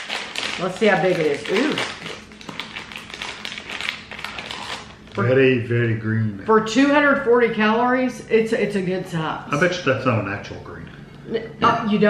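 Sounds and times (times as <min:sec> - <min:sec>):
plastic wrapper crinkling: 0:00.0 - 0:05.3.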